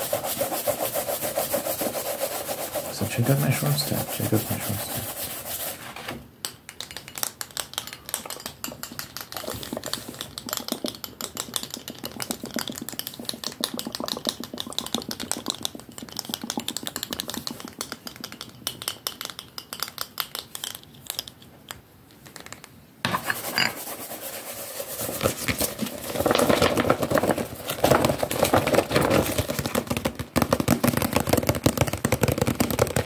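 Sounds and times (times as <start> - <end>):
fingertips tapping and scratching: 0.0 - 5.8, 6.4 - 33.0.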